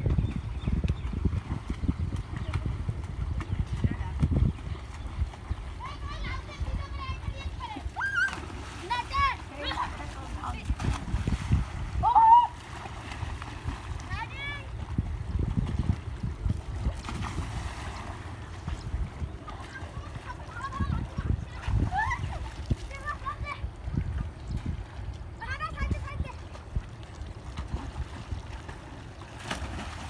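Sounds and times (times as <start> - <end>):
splashing in muddy water: 0.0 - 25.3, 25.9 - 30.0
children shouting: 7.8 - 9.4, 12.0 - 12.6.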